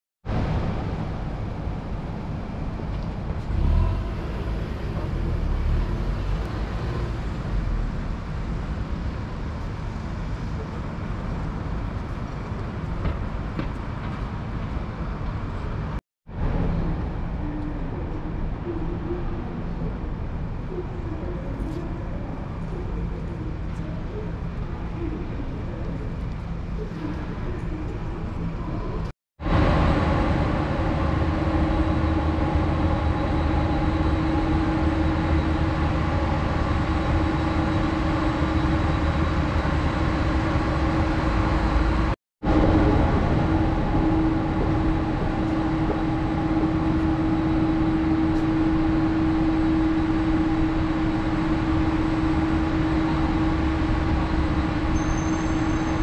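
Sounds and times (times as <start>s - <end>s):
street traffic hum: 0.2s - 56.0s.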